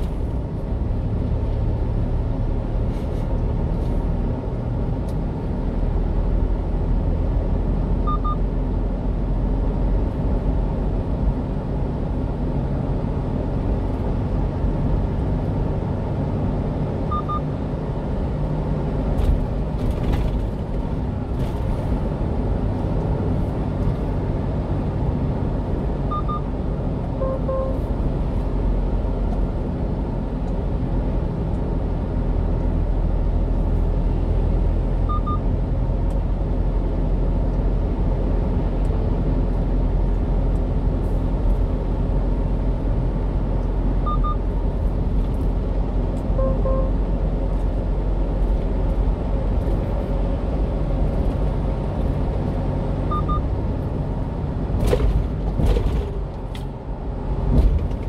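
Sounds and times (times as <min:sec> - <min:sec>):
truck engine and road rumble: 0:00.0 - 0:58.0
faint double beeps: 0:08.0 - 0:08.4, 0:17.1 - 0:17.5, 0:26.1 - 0:26.5, 0:27.2 - 0:27.8, 0:35.0 - 0:35.4, 0:44.1 - 0:44.4, 0:46.4 - 0:47.0, 0:53.1 - 0:53.5.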